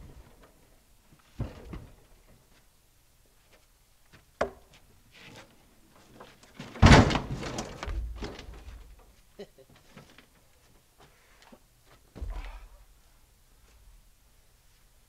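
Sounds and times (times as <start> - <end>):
small knocks and clunks: 0.1 - 2.6, 3.5 - 10.4
log thudding on truck deck: 6.8 - 8.8.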